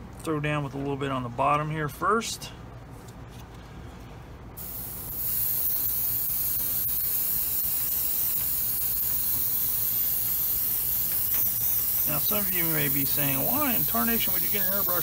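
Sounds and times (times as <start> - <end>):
airbrush spraying paint: 4.6 - 15.0.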